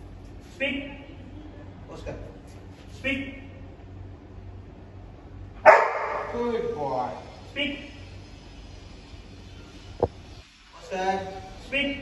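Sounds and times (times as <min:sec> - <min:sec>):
dog barking: 0:05.6 - 0:06.4.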